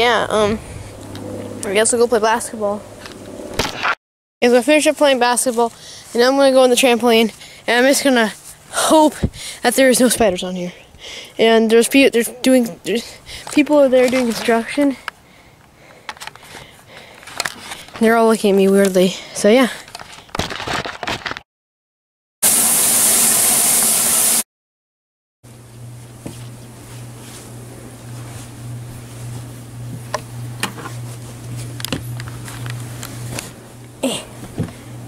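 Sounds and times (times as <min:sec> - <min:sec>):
low fan hum: 0:00.0 - 0:03.6, 0:25.5 - 0:35.0
clothes rustling: 0:26.2 - 0:30.1.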